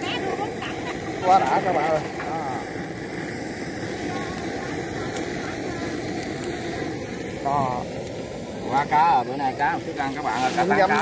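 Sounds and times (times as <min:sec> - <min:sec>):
steady engine drone: 0:00.0 - 0:11.0.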